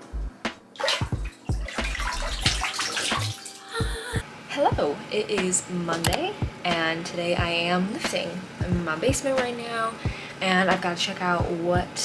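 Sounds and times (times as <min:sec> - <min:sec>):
bath water sloshing and splashing: 0:00.8 - 0:03.7.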